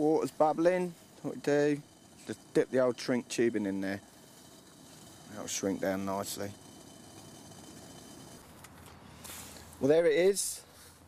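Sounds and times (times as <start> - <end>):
camping kettle hissing: 0.0 - 11.0.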